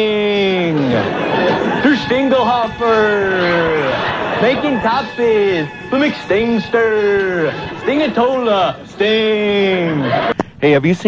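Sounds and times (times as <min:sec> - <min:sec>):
jumble of voices: 0:00.0 - 0:10.6.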